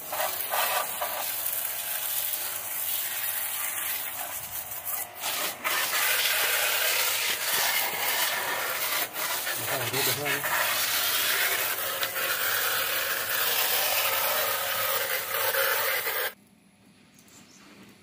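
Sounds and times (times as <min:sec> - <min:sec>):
pressure washer water jet: 0:00.0 - 0:16.4.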